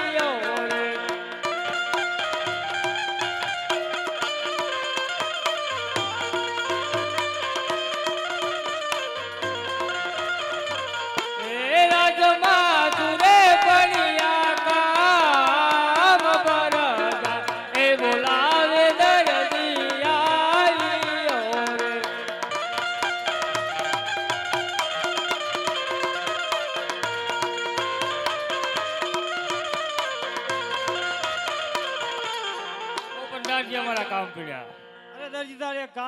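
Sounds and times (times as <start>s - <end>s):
man's voice: 0.0s - 1.4s, 11.4s - 22.6s, 33.1s - 36.0s
man singing folk melody: 11.4s - 22.3s.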